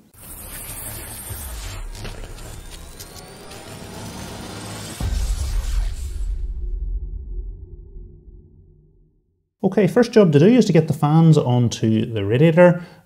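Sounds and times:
cinematic music swell: 0.2s - 9.2s
sharp hit with deep bass: 4.6s - 9.4s.

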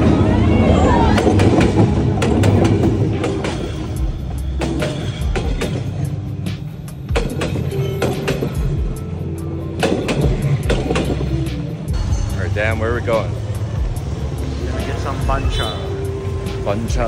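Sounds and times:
background music with singing: 0.0s - 17.0s.

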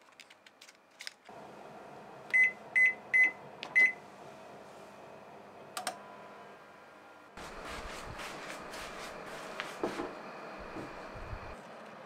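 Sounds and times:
oven hum: 1.3s - 11.6s
microwave keypad beeps: 2.3s - 4.0s.

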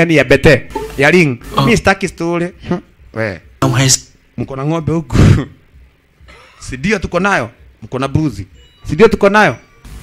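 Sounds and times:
person speaking: 0.6s - 5.4s.

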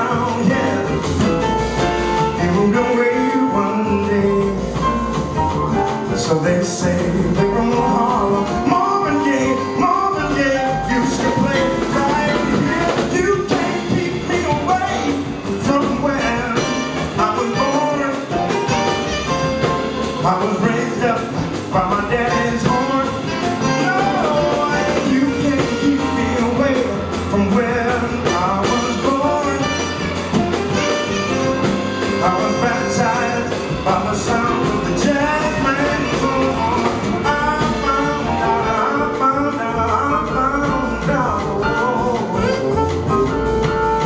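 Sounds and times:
man singing into a microphone: 0.0s - 1.4s, 2.3s - 5.1s, 6.0s - 18.9s, 20.2s - 44.0s
drums: 0.0s - 44.0s
jazz band playing: 0.0s - 44.0s
piano: 0.0s - 44.0s
upright bass: 0.0s - 44.0s
saxophone: 7.9s - 21.5s, 22.3s - 39.6s, 40.2s - 44.0s.

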